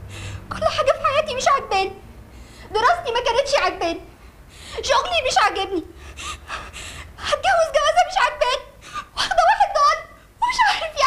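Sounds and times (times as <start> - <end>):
woman's voice: 0.5 - 2.0, 2.6 - 4.1, 4.7 - 6.0, 7.2 - 11.0
woman gasping and sobbing: 5.9 - 7.4, 8.7 - 9.4.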